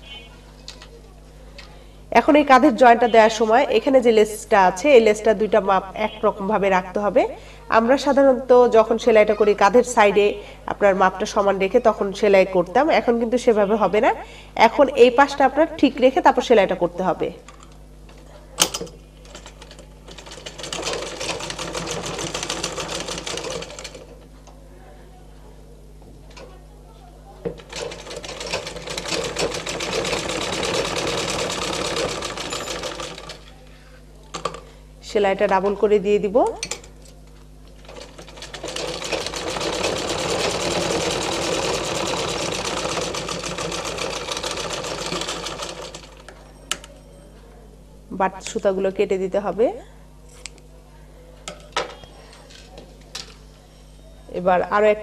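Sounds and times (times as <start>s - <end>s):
sewing machine stitching: 19.3s - 24.1s, 27.6s - 33.5s, 37.8s - 46.3s.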